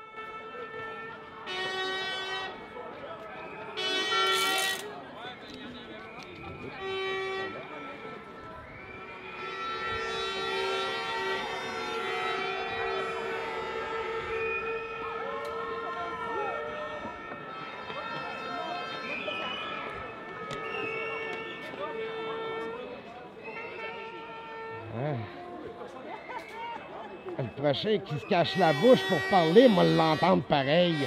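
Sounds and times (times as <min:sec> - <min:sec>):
horns blasting: 0:00.0 - 0:05.0, 0:06.0 - 0:26.5, 0:27.2 - 0:31.0
crowd voices: 0:00.0 - 0:31.0.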